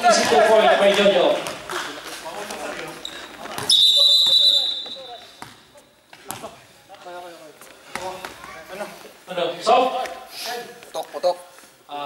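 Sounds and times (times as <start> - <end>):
referee's whistle blast: 3.7 - 5.2.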